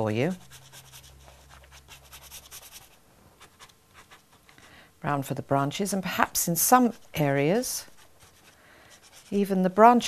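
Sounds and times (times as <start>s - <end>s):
pastel stick scratching paper: 0.2s - 4.6s, 6.8s - 10.0s.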